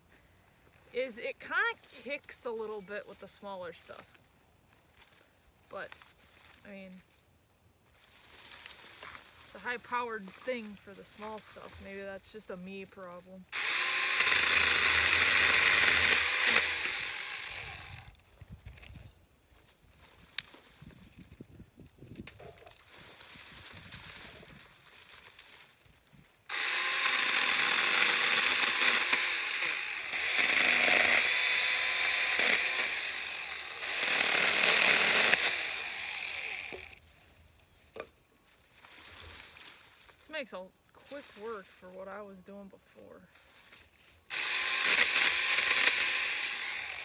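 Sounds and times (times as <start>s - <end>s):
brush rustling: 0.0s - 26.9s, 29.0s - 47.0s
chainsaw cutting branches: 13.5s - 18.2s, 26.5s - 37.1s, 43.6s - 47.0s.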